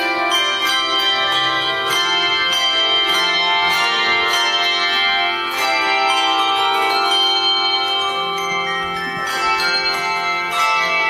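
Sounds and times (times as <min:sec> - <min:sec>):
handbell choir ringing: 0:00.0 - 0:11.0.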